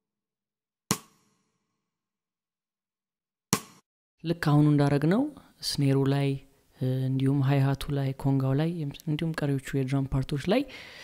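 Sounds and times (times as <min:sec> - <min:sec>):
sampled drum hits: 0:00.9 - 0:01.2, 0:03.6 - 0:03.8.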